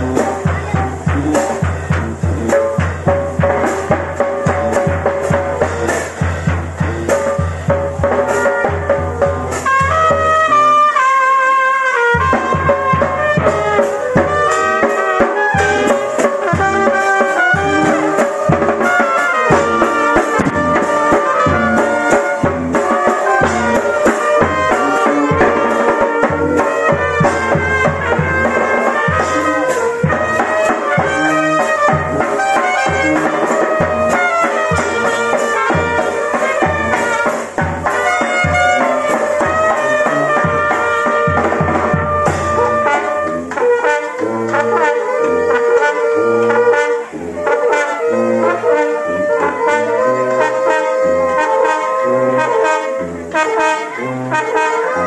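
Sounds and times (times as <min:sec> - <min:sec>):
brass band playing: 0:00.0 - 0:55.0
drum beat: 0:00.0 - 0:55.0.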